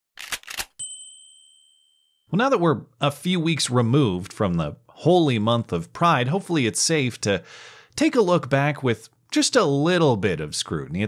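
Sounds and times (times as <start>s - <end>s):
bright bell-like ding: 0.8s - 2.3s.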